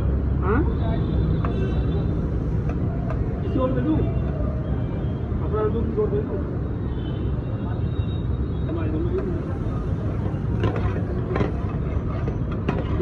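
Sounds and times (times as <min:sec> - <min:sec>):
low rumble of street-food stall: 0:00.0 - 0:13.0.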